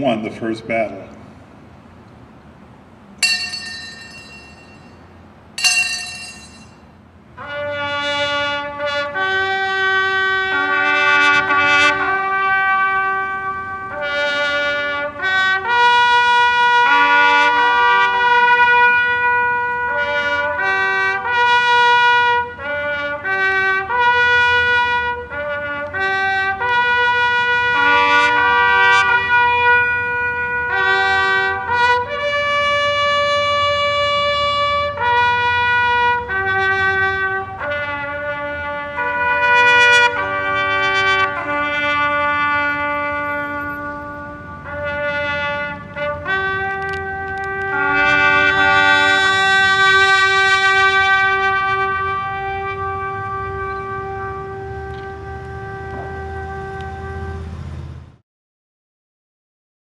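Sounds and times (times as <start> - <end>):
solo bugle call: 7.4 - 57.5.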